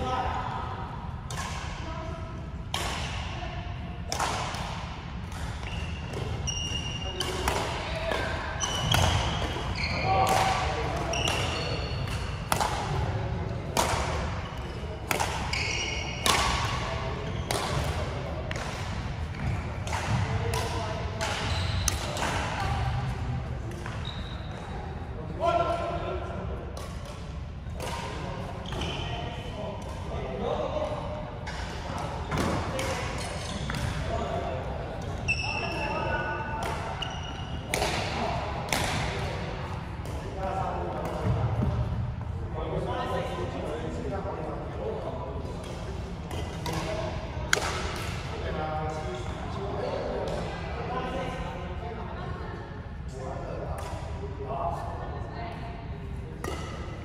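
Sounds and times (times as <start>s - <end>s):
rackets hitting shuttlecock: 1.2s - 1.8s, 2.7s - 3.3s, 4.1s - 23.1s, 26.8s - 28.9s, 31.4s - 34.1s, 36.6s - 42.0s, 45.5s - 48.5s, 56.4s - 57.0s
shoes squeaking on floor: 5.6s - 7.2s, 8.6s - 10.1s, 11.1s - 12.0s, 15.5s - 16.2s, 21.4s - 21.9s, 24.0s - 24.5s, 35.3s - 36.1s, 37.0s - 37.5s.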